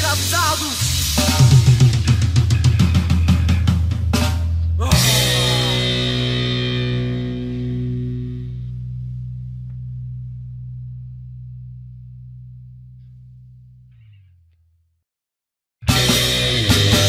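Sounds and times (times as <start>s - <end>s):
distorted electric guitar chord: 5.0s - 9.5s, 15.9s - 17.0s.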